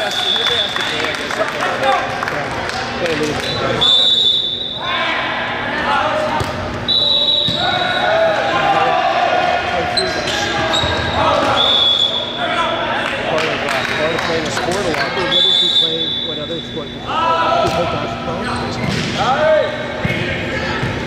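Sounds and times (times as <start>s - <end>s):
voices echoing in hall: 0.0s - 21.0s
referee whistle blasts: 3.4s - 4.9s, 6.9s - 8.1s, 10.7s - 12.4s, 15.3s - 16.4s.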